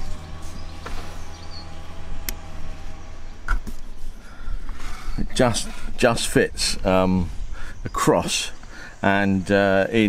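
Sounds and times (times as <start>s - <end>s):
low mechanical hum: 0.0s - 7.9s.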